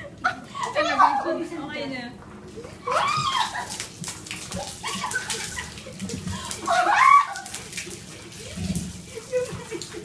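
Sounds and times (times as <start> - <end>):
water dripping onto tiled floor: 0.0 - 0.8, 2.2 - 10.0
water splashing: 2.5 - 10.0
woman squealing: 2.8 - 3.8, 6.6 - 7.5.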